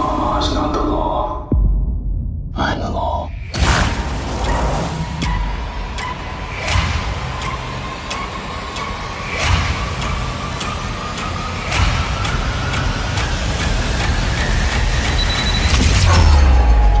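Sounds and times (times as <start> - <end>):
sharp ticks: 4.4 - 16.3.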